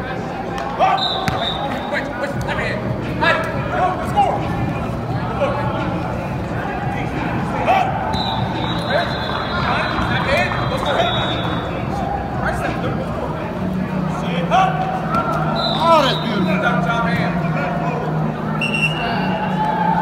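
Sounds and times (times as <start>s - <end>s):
people calling out and shouting: 0.7s - 20.0s
footballs being caught: 1.2s - 1.6s, 15.1s - 15.4s.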